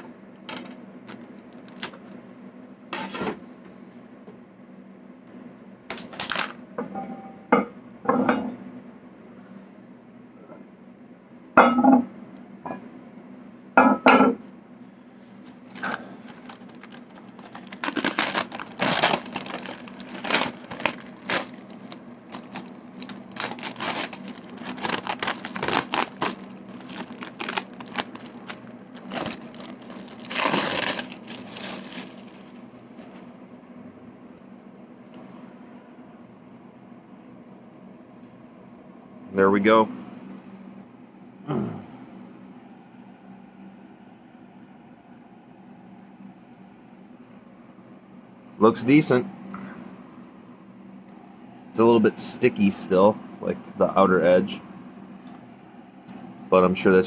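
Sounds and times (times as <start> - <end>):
faint steady hum: 0.0 - 57.0
plastic crinkling and tearing: 1.1 - 2.0, 5.9 - 6.6, 15.4 - 33.1.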